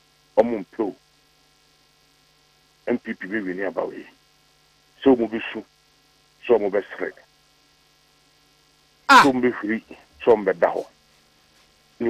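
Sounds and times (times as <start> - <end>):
low electrical hum: 0.0 - 12.0
person speaking: 9.1 - 9.9.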